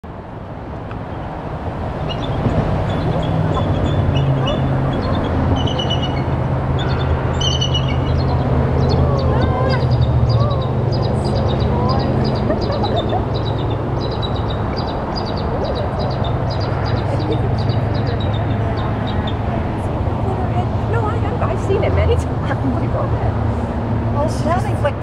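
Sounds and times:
steady low rumble: 0.0s - 25.0s
eagles chattering calls: 2.0s - 19.5s.

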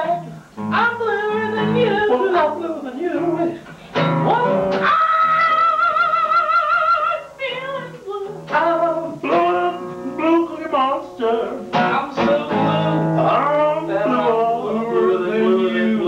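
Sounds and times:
acoustic guitar strumming: 0.0s - 16.0s
man singing: 0.0s - 16.0s.

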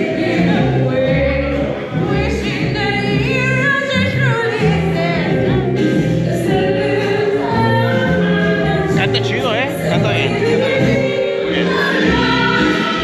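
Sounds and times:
woman singing into microphone: 0.0s - 9.0s, 9.7s - 13.0s
musical accompaniment: 0.0s - 13.0s.

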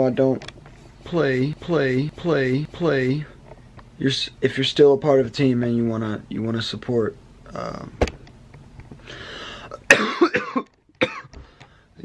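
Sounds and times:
man coughing: 9.7s - 11.3s.

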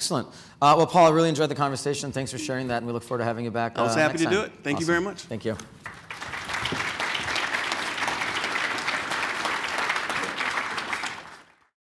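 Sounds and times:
audience applauding: 5.8s - 11.7s.

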